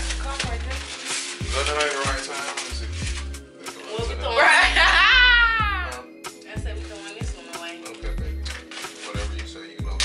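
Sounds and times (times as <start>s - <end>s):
background music with bass beat: 1.4s - 10.0s
woman's high-pitched squeal: 4.8s - 6.0s.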